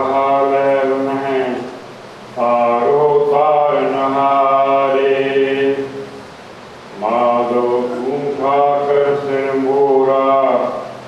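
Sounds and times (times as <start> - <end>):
man chanting: 0.0 - 1.8, 2.4 - 6.1, 7.0 - 11.0.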